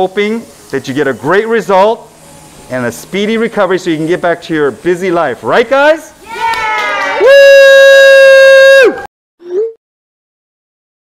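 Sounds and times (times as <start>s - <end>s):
loud held cheer: 6.2s - 9.1s.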